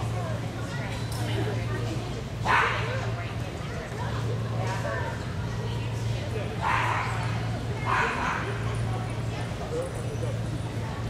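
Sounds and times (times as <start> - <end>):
faint voices: 0.0 - 11.0
dog barking: 7.9 - 8.5.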